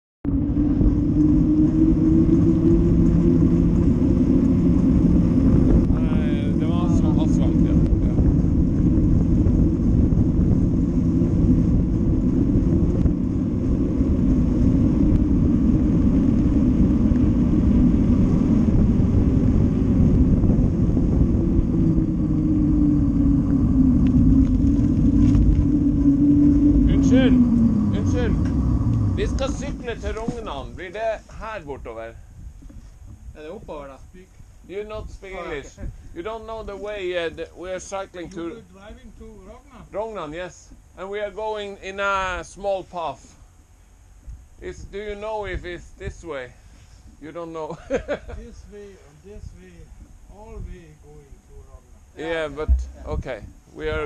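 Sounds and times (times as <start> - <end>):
wind buffeting microphone: 0.2 - 40.0, 43.6 - 47.2, 48.1 - 54.0
humming tone from bicycle ride: 0.2 - 42.2, 43.2 - 54.0.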